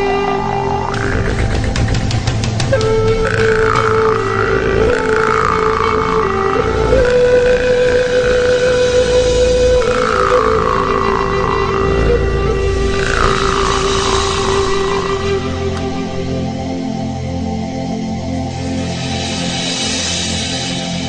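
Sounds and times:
jaw harp buzzing drone: 0.0 - 19.2.

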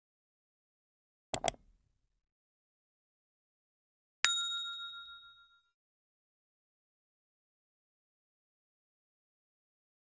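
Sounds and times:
notification bell ding: 4.3 - 5.7.

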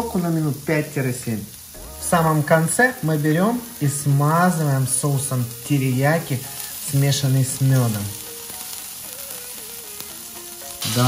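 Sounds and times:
meat sizzling on a grill: 0.0 - 11.0.

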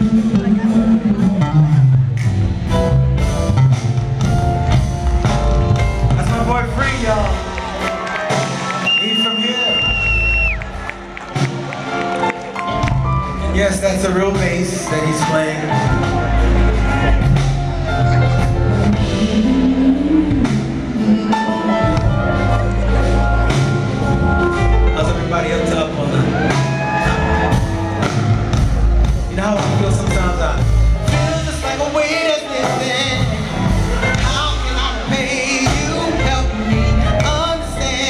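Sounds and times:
bass guitar line: 0.0 - 8.8, 9.8 - 38.0
drum kit: 0.0 - 38.0
live soul band playing: 0.0 - 38.0
electric bass line: 15.7 - 31.9.

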